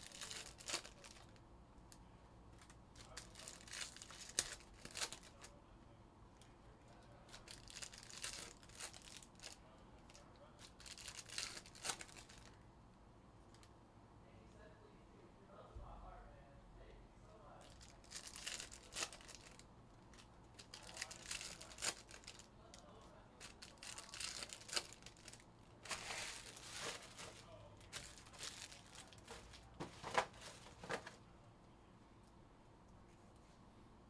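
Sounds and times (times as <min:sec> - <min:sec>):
foil wrappers tearing and crinkling: 0:00.0 - 0:01.4, 0:03.0 - 0:05.5, 0:07.3 - 0:09.6, 0:10.7 - 0:12.6, 0:17.7 - 0:19.6, 0:20.6 - 0:22.5, 0:23.4 - 0:31.1.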